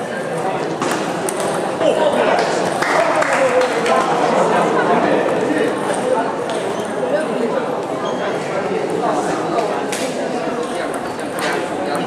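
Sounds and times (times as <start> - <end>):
table tennis balls clicking: 0.9 - 1.6, 10.6 - 12.0.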